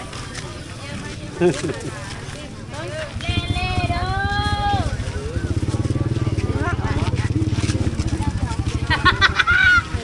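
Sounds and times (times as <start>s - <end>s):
people talking: 0.0s - 10.0s
small engine running: 3.0s - 9.3s.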